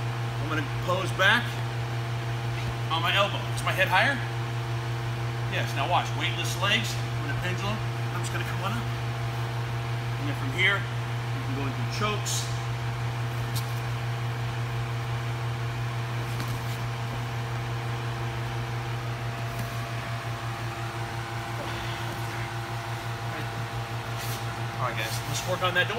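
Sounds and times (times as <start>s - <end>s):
low mechanical hum: 0.0s - 25.9s.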